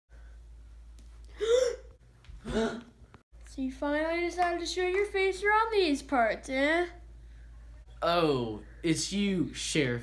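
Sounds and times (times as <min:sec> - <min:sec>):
steady low hum: 0:00.1 - 0:10.0.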